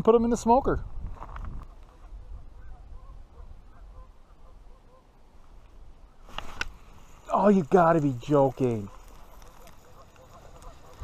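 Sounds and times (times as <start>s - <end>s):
wind rumble on microphone: 0.4s - 4.6s
distant bird calls: 1.6s - 7.3s, 8.6s - 11.0s.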